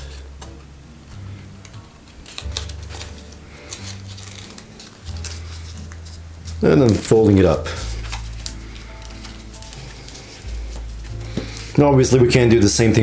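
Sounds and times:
soft background music: 0.0s - 13.0s
stiff paper crackling and rustling: 0.0s - 13.0s
paper clicks: 1.6s - 11.7s.

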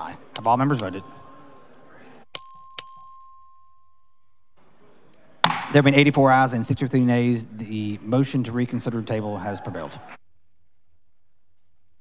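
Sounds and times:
small bell dings: 0.4s - 4.6s.

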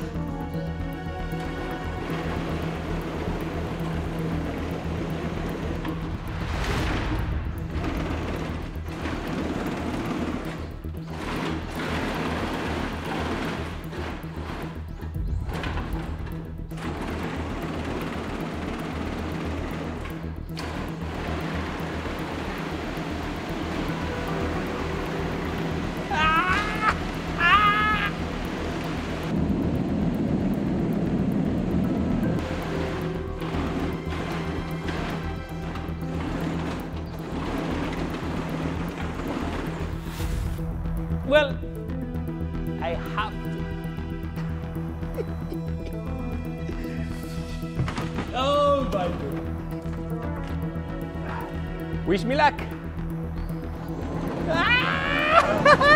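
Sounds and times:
background music: 0.0s - 55.9s.

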